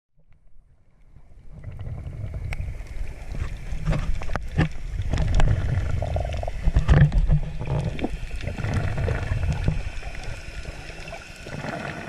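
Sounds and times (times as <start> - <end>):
underwater rumble of moving water: 0.2 - 12.0.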